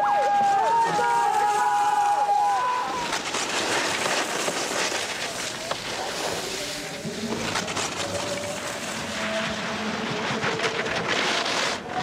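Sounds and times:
wind: 0:00.0 - 0:12.0
skis scraping icy snow: 0:00.1 - 0:12.0.

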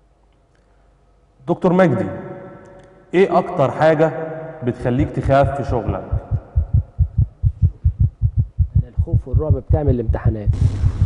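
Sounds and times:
low throbbing pulse: 0:06.0 - 0:11.0.

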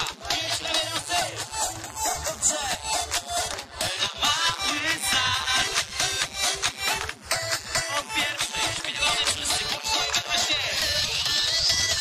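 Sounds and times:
dance music through loudspeakers: 0:00.0 - 0:12.0.

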